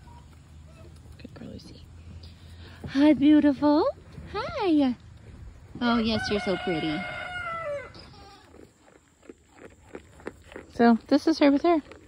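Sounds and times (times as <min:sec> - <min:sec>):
rooster crowing: 0:06.0 - 0:08.1.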